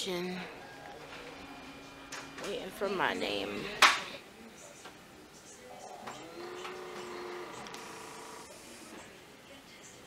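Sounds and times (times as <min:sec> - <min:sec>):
small machine whirring: 0:00.5 - 0:03.7, 0:05.8 - 0:09.1.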